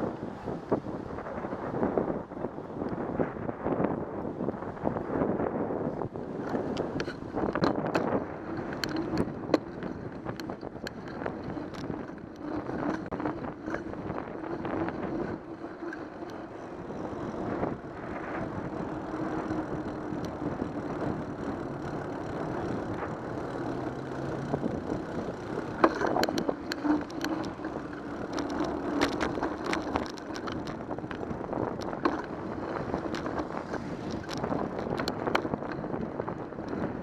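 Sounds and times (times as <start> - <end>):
road noise: 0.0 - 37.0
wind rush: 0.0 - 37.0
sharp clicks and rattles: 6.3 - 37.0.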